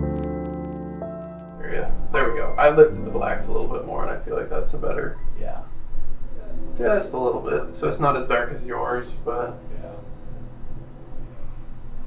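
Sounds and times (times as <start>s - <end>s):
low rumble: 1.4s - 12.0s.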